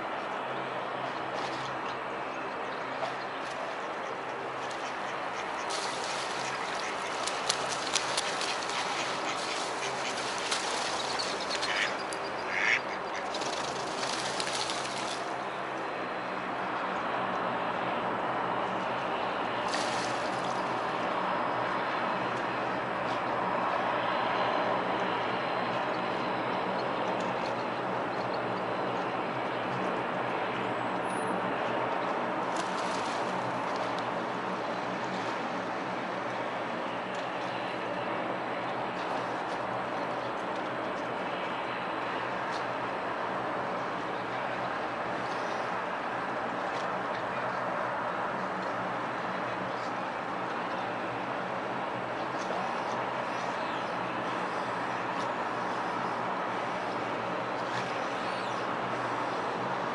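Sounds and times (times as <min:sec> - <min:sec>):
outdoor background noise: 0:00.0 - 0:59.9
duck splashing and wingbeats: 0:04.5 - 0:15.4, 0:19.6 - 0:20.8, 0:32.5 - 0:35.5
ducks quacking: 0:11.6 - 0:13.3.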